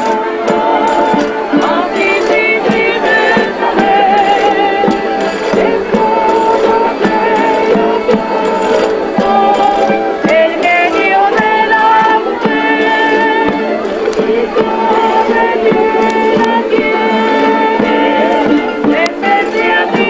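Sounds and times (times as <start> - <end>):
strummed guitars and plucked strings: 0.0 - 20.0
voices singing: 0.0 - 20.0.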